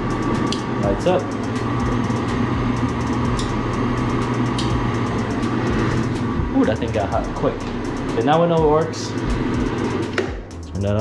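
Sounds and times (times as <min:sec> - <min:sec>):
electrical hum: 0:00.0 - 0:11.0
fan whir: 0:00.0 - 0:11.0.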